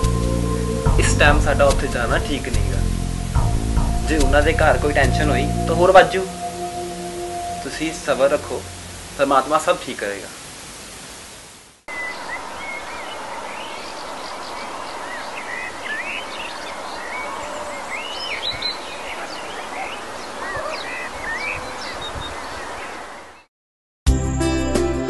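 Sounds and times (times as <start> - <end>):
steady hiss: 0.0 - 17.0
small birds chirping: 11.9 - 23.5.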